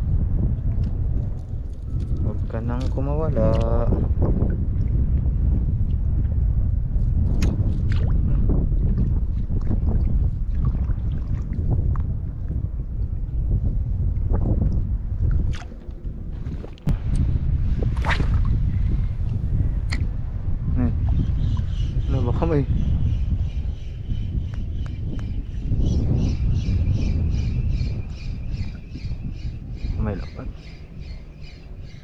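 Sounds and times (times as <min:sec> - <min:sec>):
wind rumble on microphone: 0:00.0 - 0:32.0
water sloshing around wading person: 0:08.9 - 0:12.1, 0:15.2 - 0:17.0
sharp water splashes: 0:17.9 - 0:18.6.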